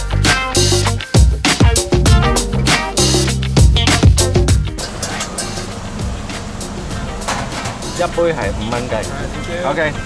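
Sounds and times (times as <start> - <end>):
low hum: 2.1 - 5.0.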